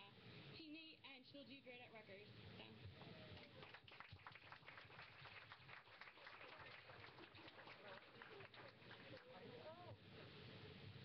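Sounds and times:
crowd applauding: 3.4 - 9.9.

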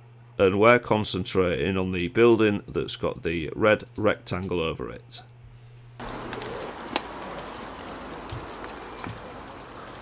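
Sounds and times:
birds calling: 6.0 - 10.0.

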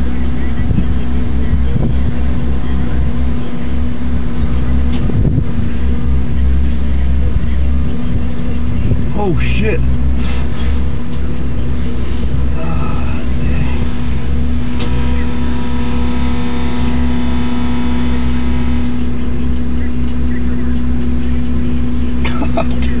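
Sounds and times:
diesel engine running: 0.0 - 23.0.

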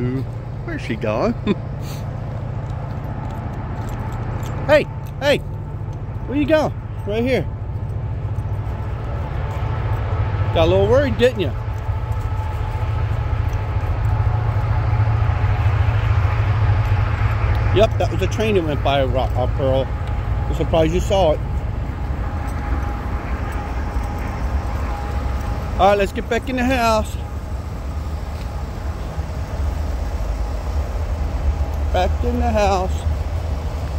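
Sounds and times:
distant train rumble: 0.0 - 33.9
faint steady ringing: 2.1 - 33.9.

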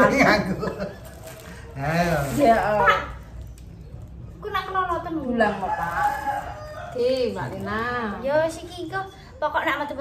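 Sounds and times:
rooster crowing: 5.5 - 7.4.

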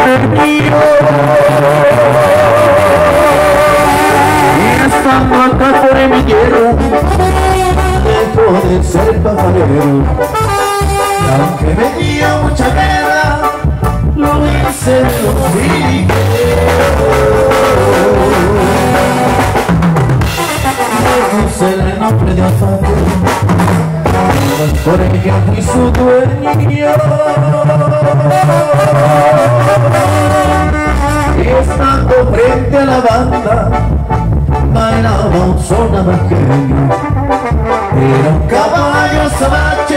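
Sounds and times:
drum kit steady beat: 0.0 - 39.9
electronic keyboard: 0.0 - 39.9
steady bass: 0.0 - 39.9
trombones playing: 0.0 - 39.9.

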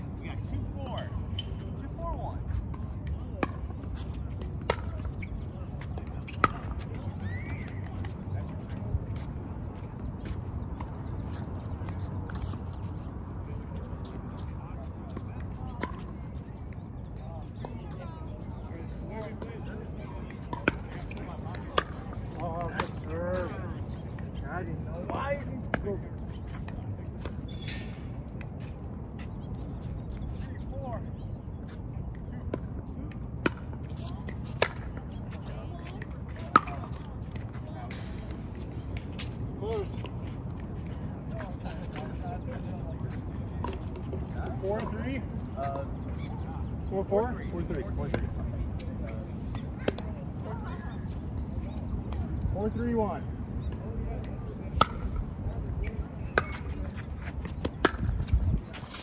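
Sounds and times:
faint distant voices: 0.0 - 59.0
outdoor background noise: 0.0 - 59.0.

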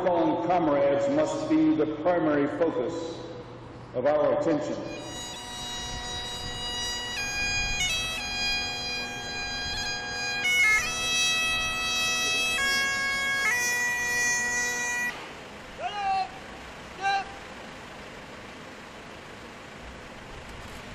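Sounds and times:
bagpipes playing slow melody: 4.7 - 15.6.

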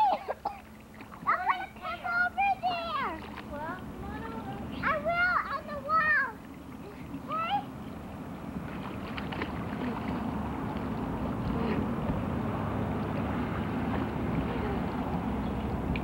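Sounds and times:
water splashing: 0.0 - 16.0.

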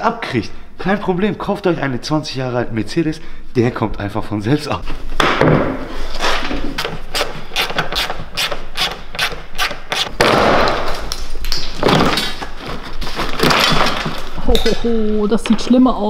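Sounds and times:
plastic trim cracking and snapping: 9.9 - 14.4.

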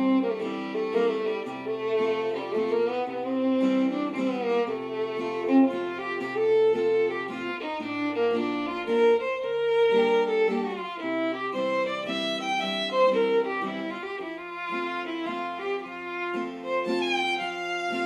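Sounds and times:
fiddle playing lively melody: 0.0 - 18.0
strummed acoustic guitar: 0.0 - 18.0.

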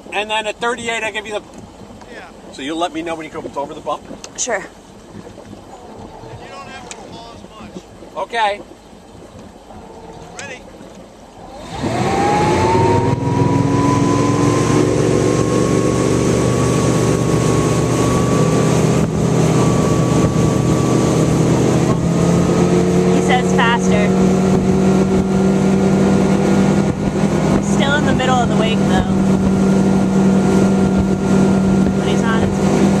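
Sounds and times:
motorboat engine accelerating: 0.0 - 33.0
rushing water: 0.0 - 33.0
wind: 0.0 - 33.0.

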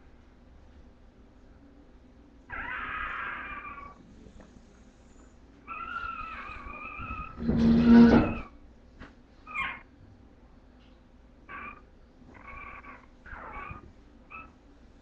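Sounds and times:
puppies whining and crying: 2.5 - 4.0, 5.6 - 8.5, 9.5 - 9.8, 11.5 - 14.6
puppy squeak: 5.7 - 8.5, 9.5 - 9.8, 11.5 - 14.5.

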